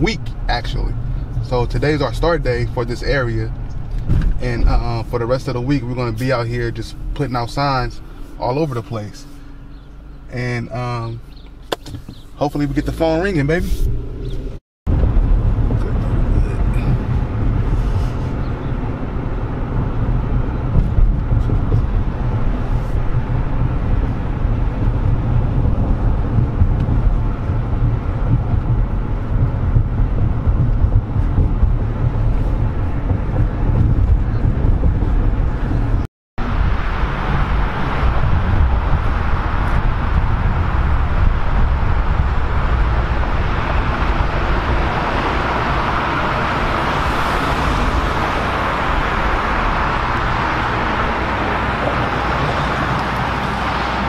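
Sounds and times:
car interior road noise: 0.0 - 54.0
cars passing: 0.0 - 54.0.

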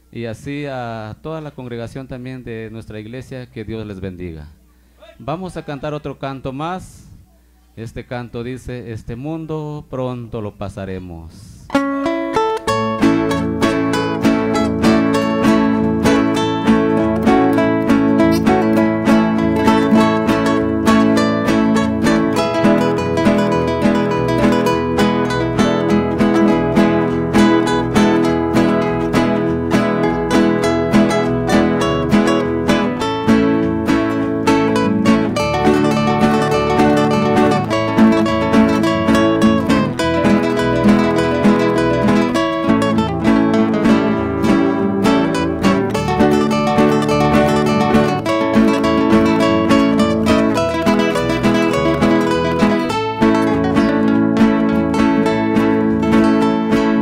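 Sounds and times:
acoustic guitar: 11.7 - 57.0
electric bass: 11.8 - 57.0.

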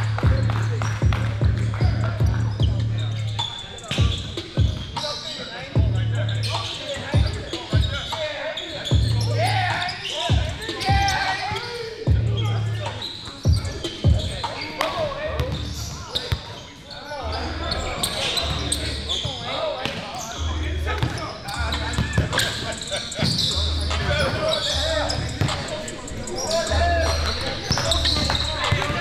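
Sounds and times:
people's voices in hall: 0.0 - 29.0.

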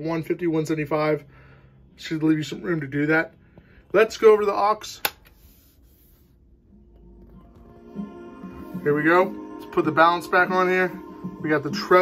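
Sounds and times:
faint music from speakers: 5.7 - 12.0.

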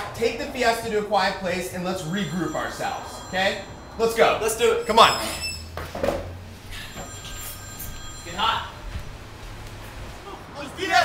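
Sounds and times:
telephone ringing: 1.5 - 9.4.

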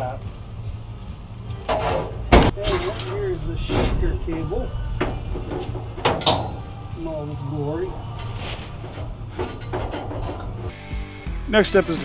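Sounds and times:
steady low hum: 0.0 - 11.0
metal clack and scrape: 1.6 - 6.7, 8.1 - 10.8.

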